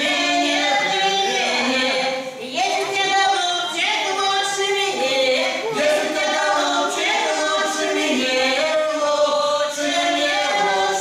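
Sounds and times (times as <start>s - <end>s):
vocal ensemble singing a cappella: 0.0s - 11.0s.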